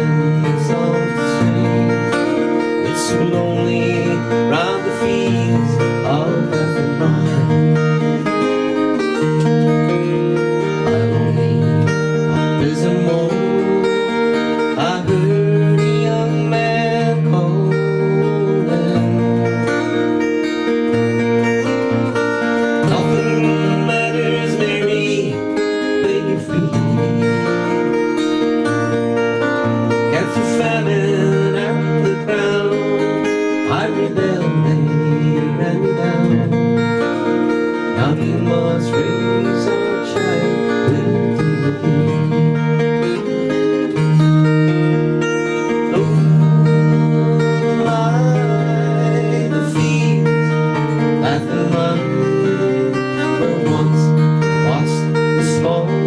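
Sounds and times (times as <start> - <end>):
acoustic guitar strumming folk tune: 0.0 - 56.0.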